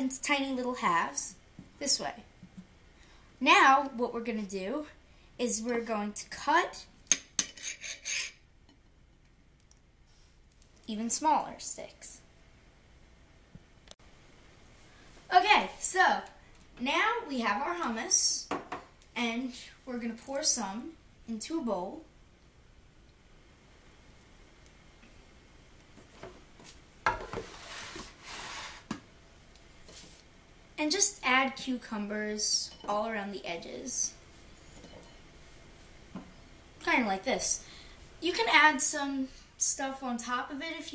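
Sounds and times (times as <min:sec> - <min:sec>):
spoon and dishes clattering: 0:07.1 - 0:08.4, 0:34.7 - 0:35.2.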